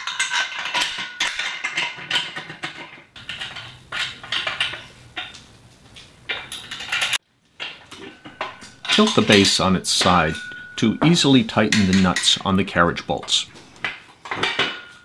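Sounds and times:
metal bolts clinking and knocking: 0.0 - 15.0.

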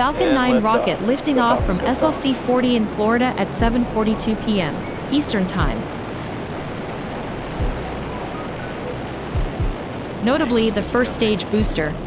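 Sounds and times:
low falling sweeps: 0.0 - 12.0
music: 0.0 - 12.0
rocket engines rushing: 0.0 - 12.0.

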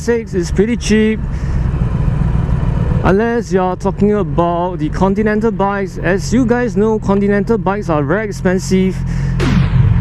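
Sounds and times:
motorcycle engine rumble: 0.0 - 10.0.

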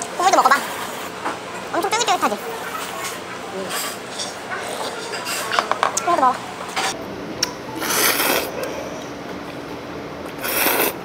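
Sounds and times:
noodles being slurped: 10.4 - 11.0.

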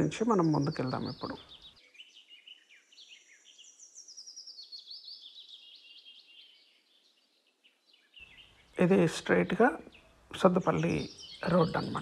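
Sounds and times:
birds chirping faintly: 0.0 - 12.0.

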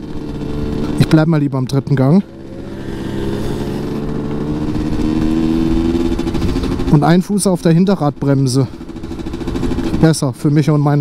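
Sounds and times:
two-stroke engine pulling: 0.0 - 11.0.

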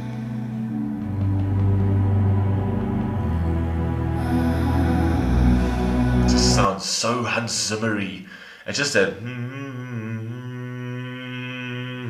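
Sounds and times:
man humming low note: 0.0 - 6.8, 9.2 - 12.0.

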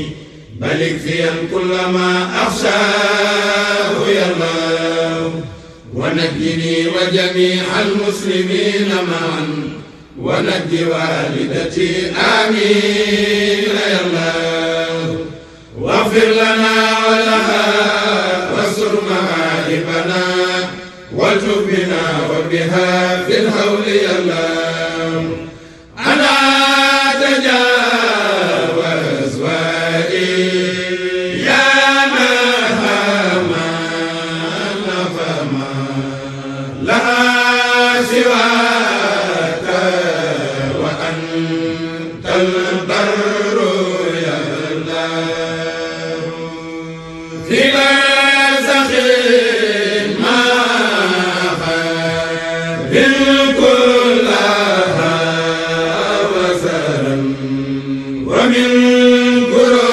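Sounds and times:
voices chanting: 0.0 - 59.9.

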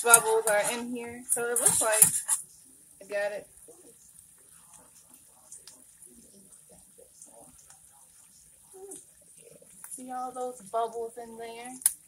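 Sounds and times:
whisk stirring bubbling sauce: 1.4 - 2.4, 3.6 - 12.0
faint voice murmuring: 3.7 - 9.8.

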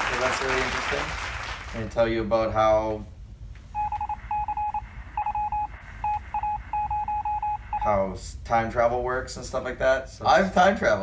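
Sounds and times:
low background hum: 0.0 - 11.0
short electronic beeps: 3.8 - 7.9.

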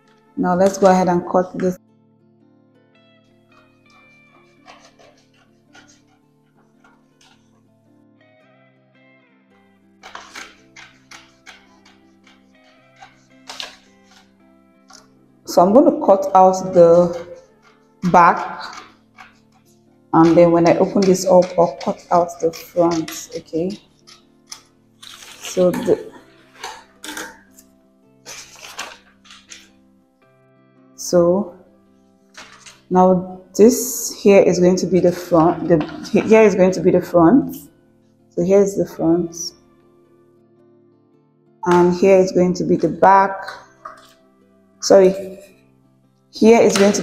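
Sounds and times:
soft background music: 0.0 - 47.0
scissors snipping paper: 3.6 - 7.5, 10.0 - 14.3, 14.9 - 15.1, 16.6 - 29.7, 32.4 - 32.9.

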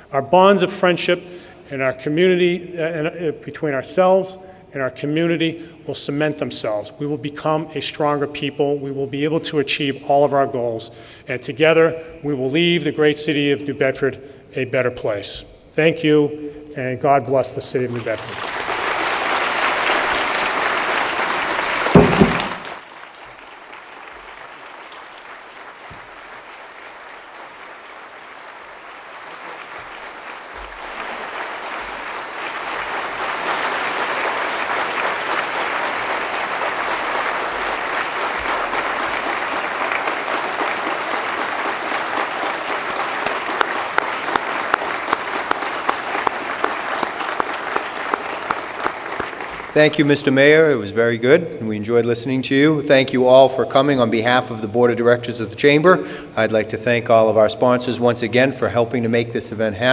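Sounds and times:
crowd applauding: 17.9 - 50.2
sharp single claps: 21.8 - 22.8
thump: 21.9 - 22.7.

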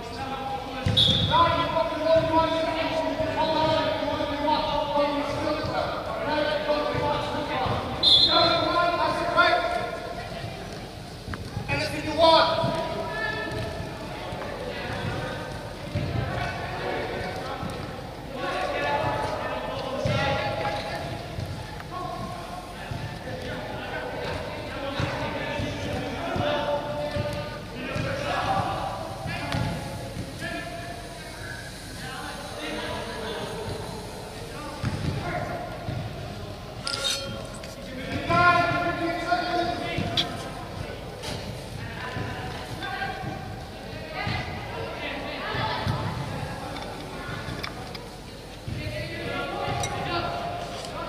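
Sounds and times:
voices in a hall: 0.0 - 51.0
footballs kicked and bouncing: 0.8 - 4.2, 5.2 - 30.5, 34.8 - 36.3, 37.3 - 44.6, 48.6 - 50.2
footballs tapped on artificial turf: 12.5 - 16.7, 19.9 - 23.6, 24.2 - 28.7, 34.8 - 35.3.

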